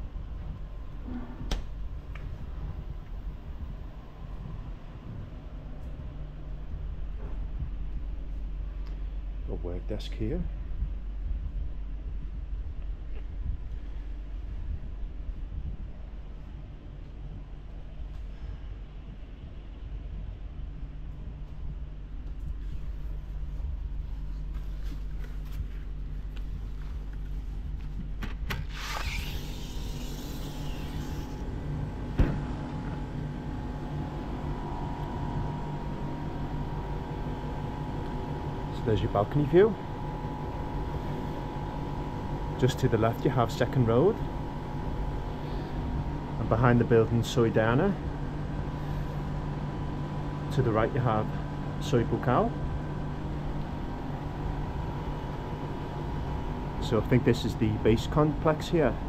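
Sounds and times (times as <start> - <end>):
air-conditioning units: 0.0 - 59.0
faint steady whine: 0.0 - 59.0
curtains rustling on microphone: 21.5 - 28.2
building machinery: 28.2 - 33.0.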